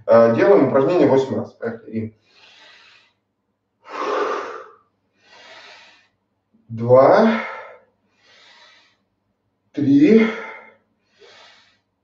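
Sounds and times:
man's forceful breath: 3.8s - 6.2s, 7.4s - 9.1s, 10.2s - 12.0s.

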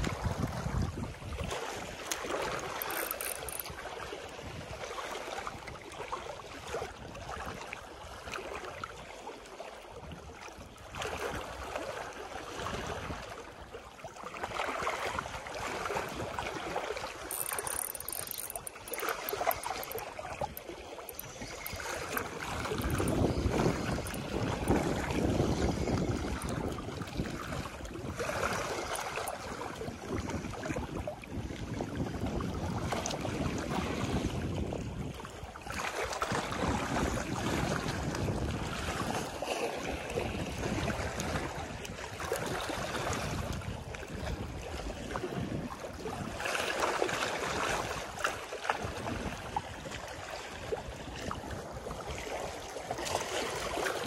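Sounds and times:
wind buffeting microphone: 0.0s - 2.0s, 18.9s - 35.5s, 36.3s - 46.4s
sea water sloshing and lapping: 0.0s - 54.0s.

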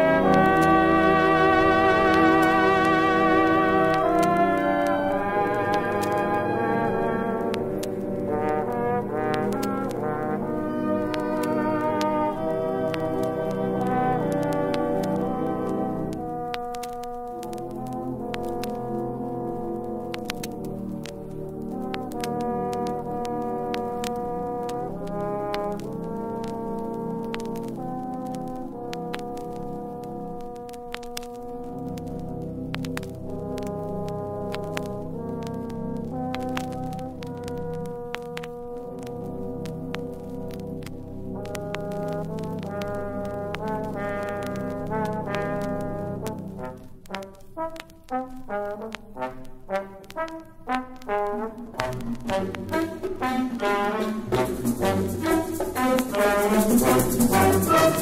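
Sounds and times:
concert band brass playing: 0.0s - 16.6s, 41.4s - 58.0s
solo trombone: 0.0s - 20.6s, 21.7s - 30.9s, 33.3s - 40.6s, 41.3s - 58.0s
vinyl record pops and clicks: 0.0s - 58.0s.

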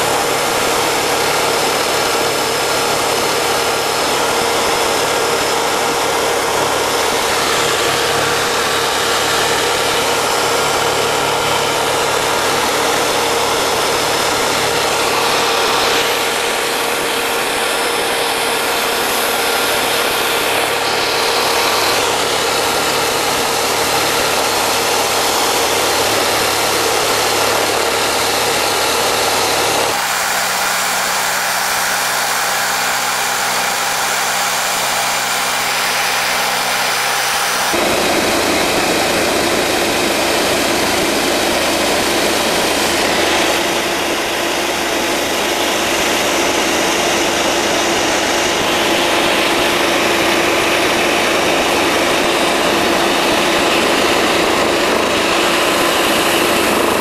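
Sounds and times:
helicopter engine and rotor noise: 0.0s - 57.0s.

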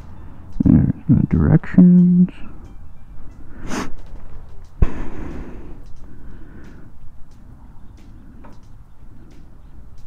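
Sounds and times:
rustling and handling noise: 3.6s - 10.0s.

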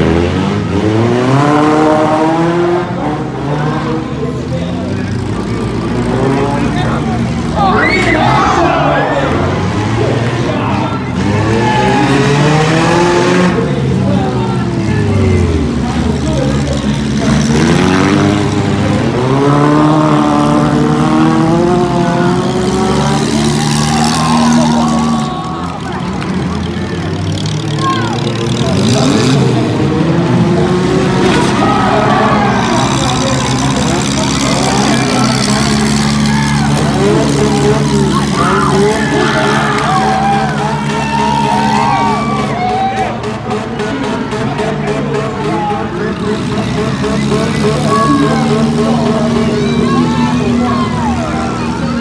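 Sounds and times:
car engines revving hard: 0.0s - 52.0s.

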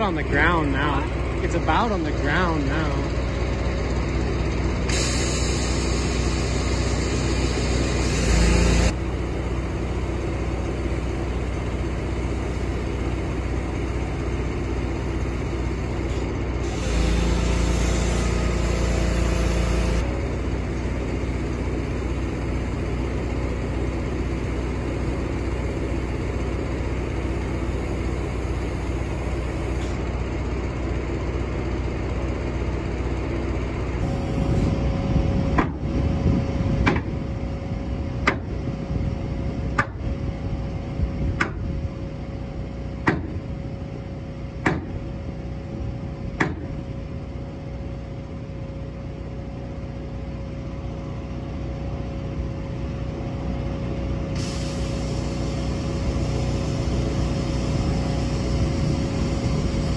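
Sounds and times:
machine engine running: 0.0s - 41.2s, 47.3s - 59.9s.

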